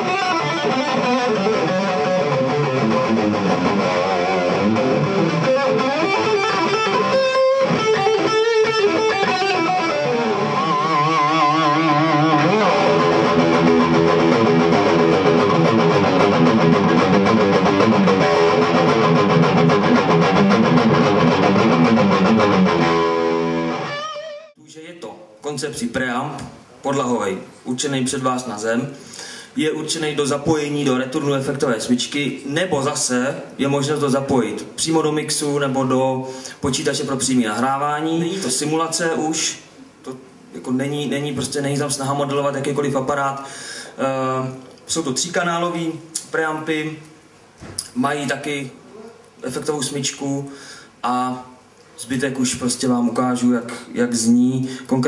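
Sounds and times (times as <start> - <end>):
electric guitar lead: 0.0 - 24.6
man talking: 24.6 - 29.0, 29.6 - 47.1, 47.8 - 55.0.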